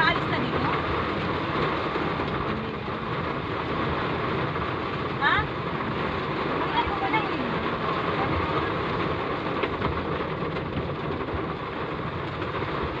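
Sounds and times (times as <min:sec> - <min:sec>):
rain hitting car roof: 0:00.0 - 0:13.0
wet road noise: 0:00.0 - 0:13.0.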